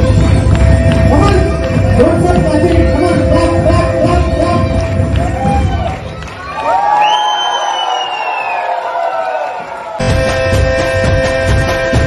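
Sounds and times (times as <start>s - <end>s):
dance music with steady beat: 0.0s - 6.0s, 10.0s - 12.0s
audience cheering: 5.1s - 10.4s.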